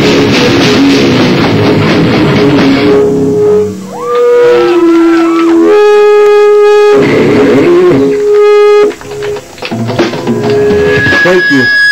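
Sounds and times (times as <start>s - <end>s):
live rock band: 0.0s - 5.8s.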